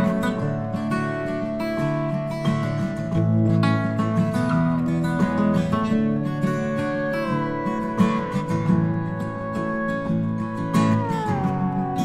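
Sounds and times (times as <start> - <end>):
acoustic guitars strumming: 0.0 - 12.0
sustained high melody note: 7.7 - 12.0.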